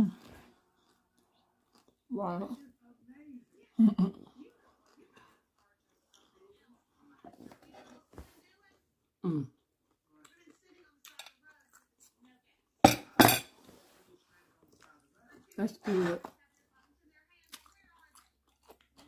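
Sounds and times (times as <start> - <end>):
faint rustling of food: 0.0 - 12.8, 13.5 - 19.0
dishware clattering: 12.9 - 13.6.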